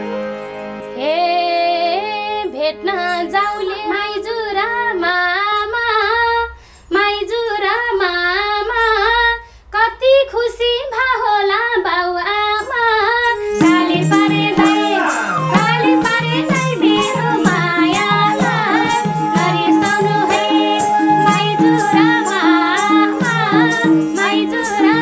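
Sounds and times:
woman singing folk melody: 0:01.0 - 0:25.0.

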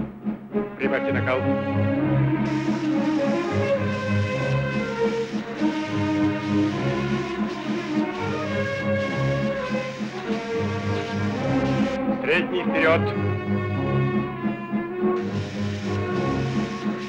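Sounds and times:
low brass sustained notes: 0:00.6 - 0:17.0.

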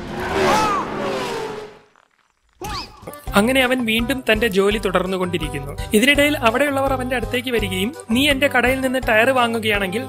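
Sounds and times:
race car engine and tyres: 0:00.0 - 0:03.0.

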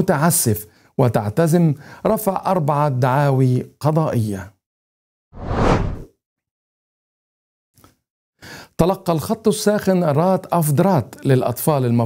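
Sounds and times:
whoosh sound effect: 0:05.4 - 0:06.1.

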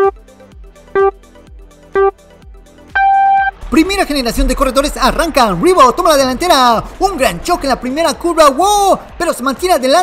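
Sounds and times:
countdown beeps: 0:00.0 - 0:00.2, 0:00.9 - 0:01.2, 0:01.9 - 0:02.2, 0:03.0 - 0:03.6.

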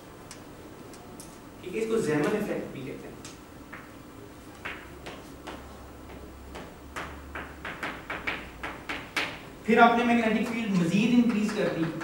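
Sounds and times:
chalk tapping on a blackboard: 0:04.6 - 0:09.4.

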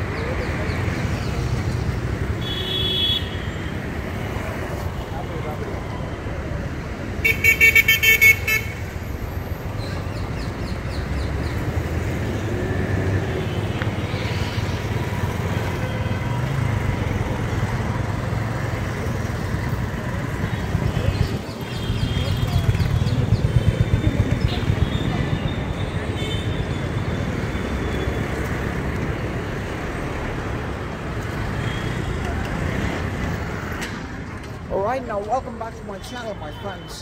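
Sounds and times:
motorcycles passing: 0:00.0 - 0:35.4
city street traffic: 0:00.0 - 0:37.0
vehicle horns honking: 0:02.4 - 0:03.6, 0:07.2 - 0:09.0, 0:24.8 - 0:27.0.

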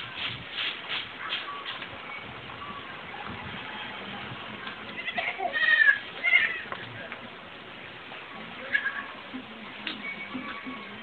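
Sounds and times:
goat bleating: 0:04.9 - 0:06.7.

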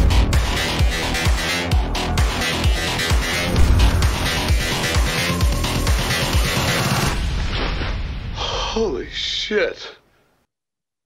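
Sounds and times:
man gasping: 0:08.4 - 0:08.8.

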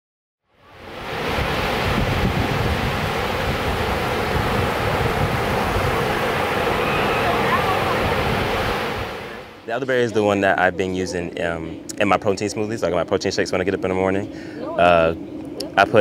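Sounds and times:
ocean surf washing onto beach: 0:00.6 - 0:16.0
wind buffeting microphone: 0:00.8 - 0:16.0.

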